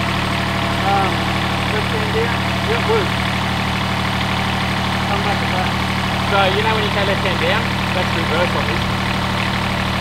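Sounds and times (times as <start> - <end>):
diesel mower engine running: 0.0 - 10.0.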